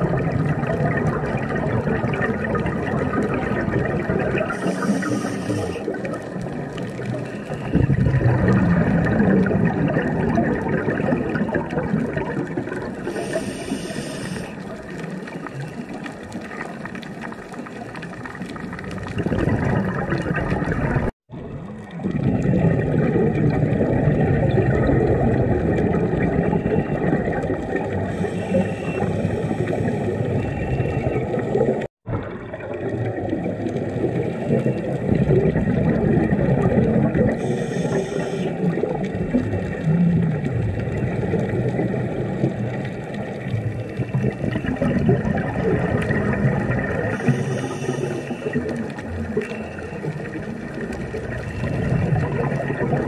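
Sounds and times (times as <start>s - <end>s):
underwater rush of water and bubbles: 0.0s - 53.0s
short hisses: 4.6s - 5.8s, 13.1s - 14.5s.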